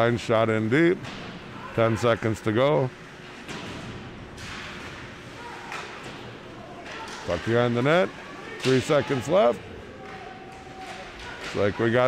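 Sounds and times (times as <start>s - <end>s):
hockey sticks and puck knocking: 3.4s - 6.2s, 6.8s - 9.4s, 10.0s - 12.0s.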